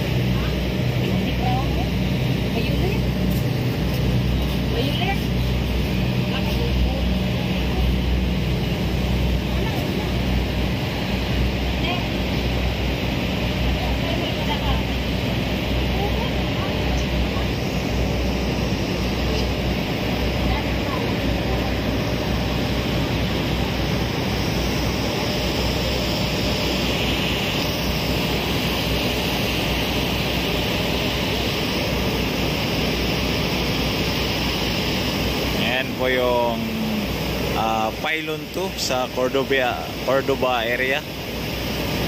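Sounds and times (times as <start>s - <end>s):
ship engine drone: 0.0s - 42.0s
wind: 0.0s - 42.0s.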